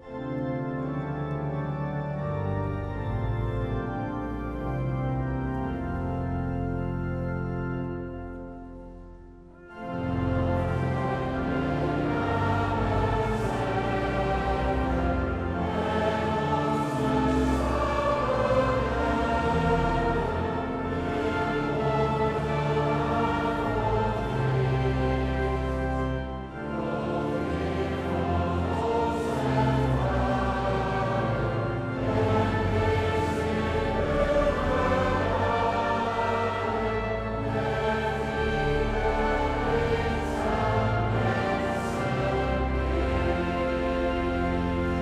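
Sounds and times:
sustained instrumental accompaniment: 0.0s - 45.0s
congregation and choir singing hymn: 9.7s - 45.0s.

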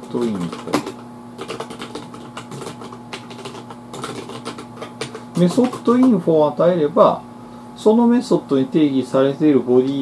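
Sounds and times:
typing on a keyboard: 0.0s - 6.2s.

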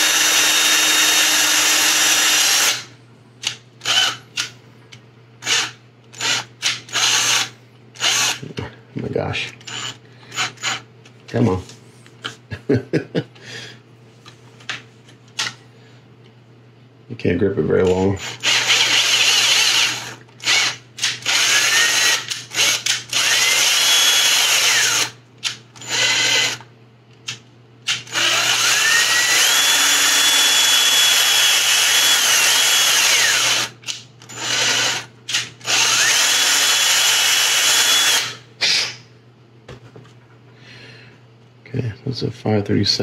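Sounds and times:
cordless drill motor whine: 0.0s - 2.9s, 3.8s - 4.2s, 5.4s - 8.4s, 9.6s - 10.8s, 18.2s - 25.2s, 25.8s - 26.6s, 28.1s - 38.4s.

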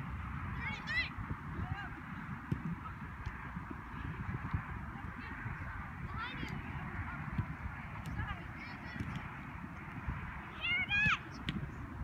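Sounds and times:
distant players' voices: 0.4s - 12.0s.

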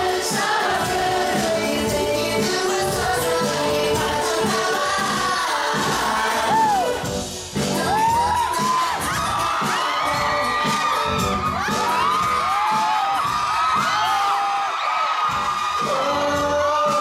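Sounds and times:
audience screaming and cheering: 0.0s - 17.0s
loud concert music with a beat: 0.0s - 17.0s.

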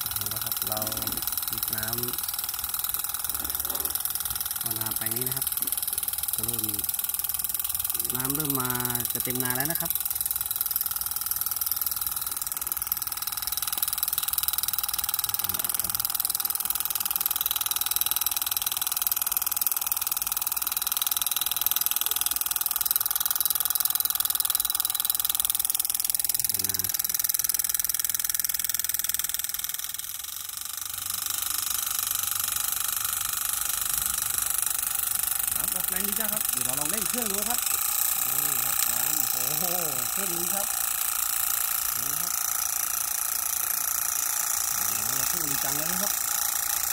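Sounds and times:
water pump motor whining: 0.0s - 46.9s.

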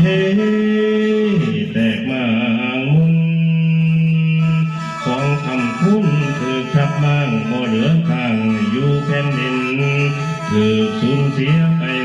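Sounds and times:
mouth organ drone: 0.0s - 12.0s
person singing: 0.0s - 12.0s.

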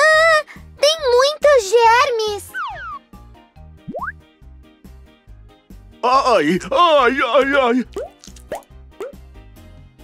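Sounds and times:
soft background music: 0.0s - 10.0s
cartoon pop sound effects: 3.9s - 4.2s.

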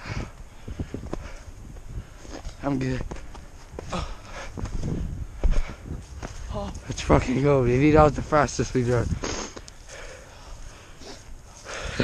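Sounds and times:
low rumble against microphone: 0.0s - 9.3s
grass rustling: 0.2s - 12.0s.

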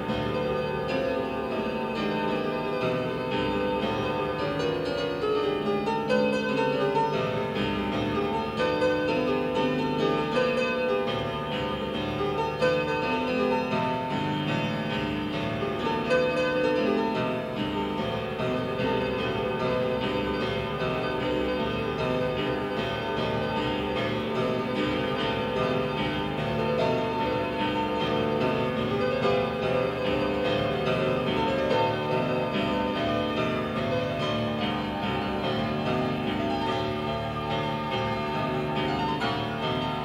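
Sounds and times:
keyboard chords: 0.0s - 40.0s.

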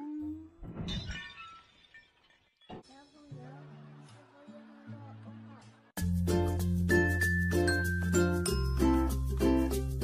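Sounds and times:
music with held notes: 6.0s - 10.0s.

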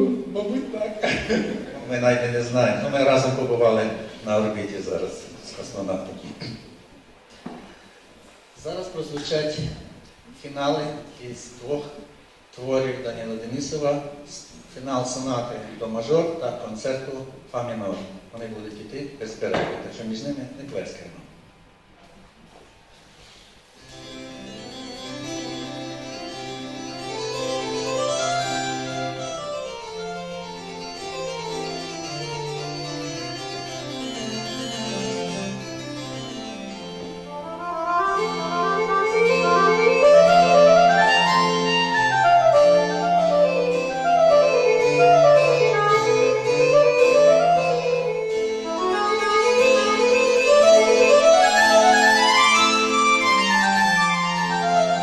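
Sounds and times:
accordion playing fast piece: 23.8s - 55.0s.

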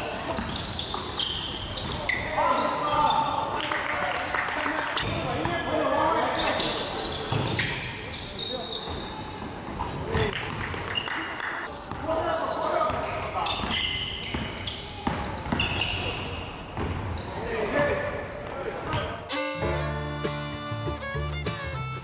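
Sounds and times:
sneakers squeaking: 0.0s - 3.5s, 5.0s - 19.4s
basketball bouncing: 16.8s - 17.1s.

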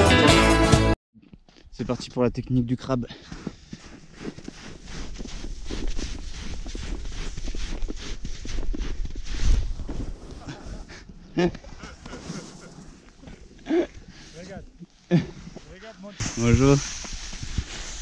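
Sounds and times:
footsteps crunching in snow: 1.4s - 14.6s, 15.4s - 18.0s
person speaking: 13.7s - 17.0s.

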